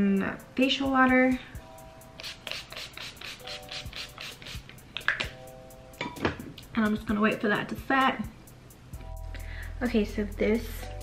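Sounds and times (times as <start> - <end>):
soft background music: 0.0 - 11.0
short hissing spray bursts: 2.2 - 4.7.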